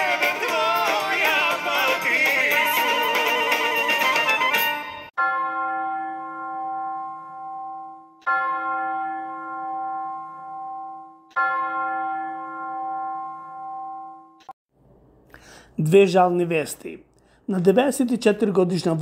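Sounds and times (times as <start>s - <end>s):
bell tolling: 5.1s - 14.4s.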